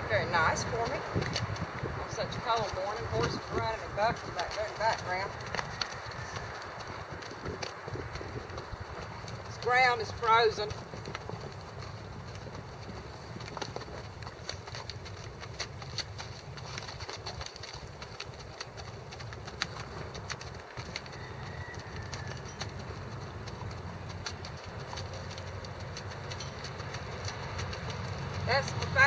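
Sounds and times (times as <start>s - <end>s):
horse hoofbeats on frozen ground: 0.0s - 29.0s.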